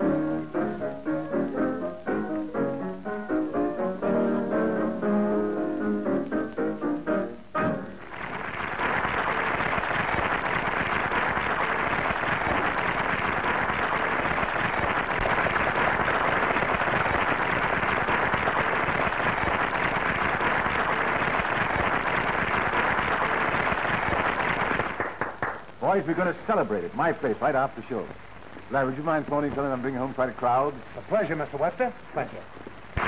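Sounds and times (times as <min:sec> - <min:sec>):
audience applauding: 0:08.0 - 0:25.7.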